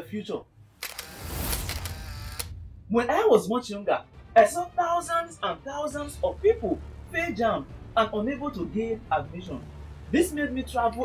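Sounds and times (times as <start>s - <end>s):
low rumble: 0.5s - 10.2s.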